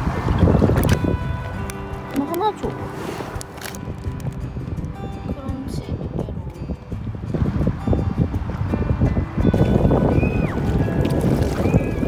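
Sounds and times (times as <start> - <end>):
paddle splashing water: 0.0 - 4.3, 8.4 - 12.0
background music: 0.0 - 12.0.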